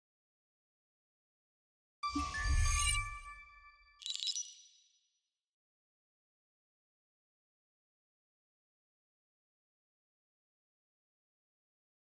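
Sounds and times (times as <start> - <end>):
bright high chime: 2.0 - 4.8.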